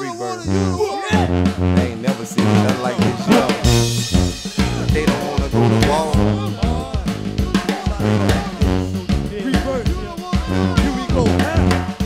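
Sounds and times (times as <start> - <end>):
brass band playing: 0.0 - 12.0.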